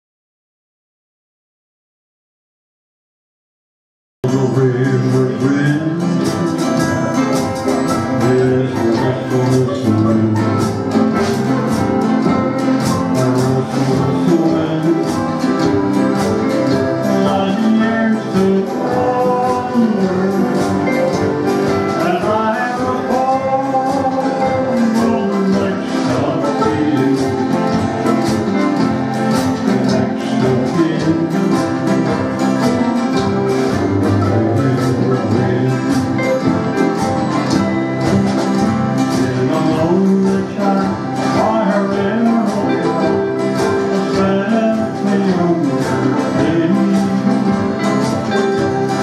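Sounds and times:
acoustic guitar strumming: 0:04.2 - 0:49.0
man singing country song: 0:04.2 - 0:49.0.

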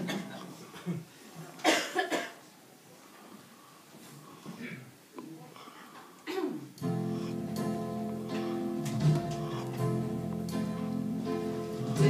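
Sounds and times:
person coughing: 0:01.6 - 0:02.4, 0:06.2 - 0:06.7.

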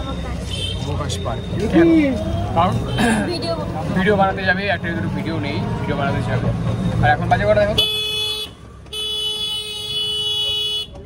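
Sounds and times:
street traffic: 0:00.0 - 0:11.0
vehicle horn honking: 0:07.8 - 0:11.0.

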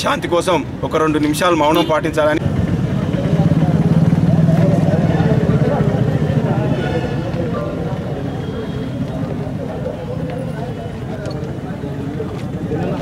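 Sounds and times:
vehicle engine running: 0:02.3 - 0:08.4
faint background voices: 0:02.4 - 0:13.0.

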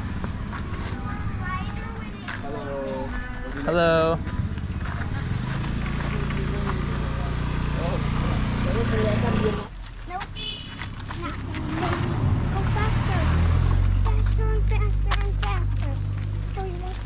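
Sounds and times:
scooter engine passing: 0:00.0 - 0:17.0.

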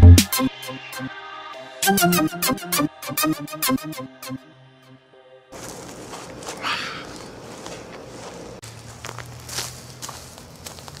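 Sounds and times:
footsteps outdoors: 0:05.5 - 0:11.0.

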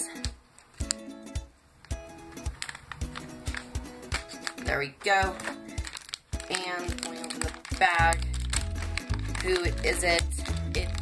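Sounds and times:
background music with held notes: 0:00.0 - 0:11.0
foil bag crinkling: 0:02.3 - 0:11.0
scissors cutting foil: 0:02.4 - 0:04.7, 0:05.3 - 0:11.0.

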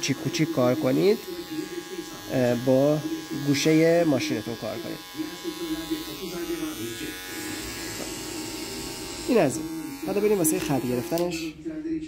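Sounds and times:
electric hair clipper humming: 0:00.0 - 0:11.5.

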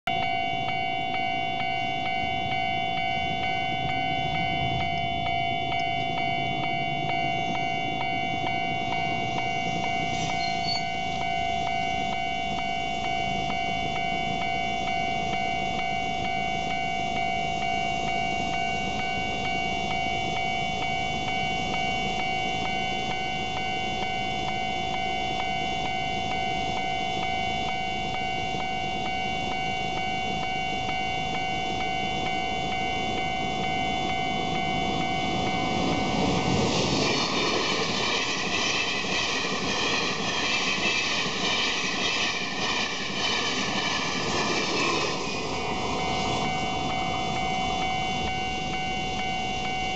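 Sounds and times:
level crossing warning bell: 0:00.1 - 0:49.9.

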